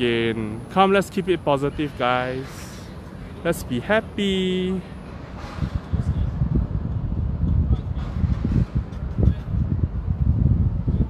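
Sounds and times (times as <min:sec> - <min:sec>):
wind buffeting microphone: 0:05.0 - 0:11.0.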